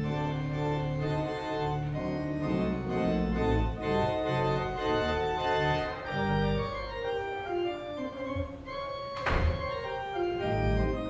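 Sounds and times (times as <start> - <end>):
pipe organ chords: 0.0 - 11.0
loud thump: 9.2 - 9.9.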